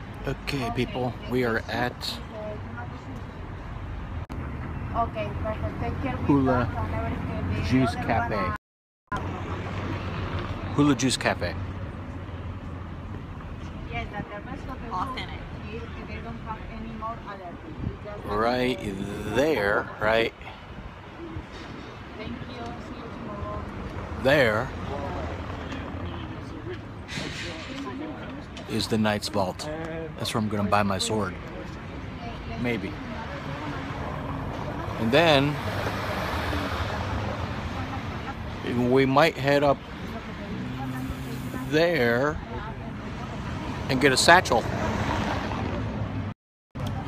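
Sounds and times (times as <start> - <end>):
street traffic rumble: 0.0 - 47.0
faint voices: 14.0 - 46.0.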